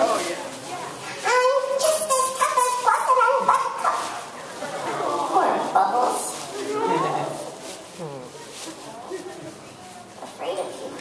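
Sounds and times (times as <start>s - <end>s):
woman's squeaky cartoon voice: 1.2s - 4.1s.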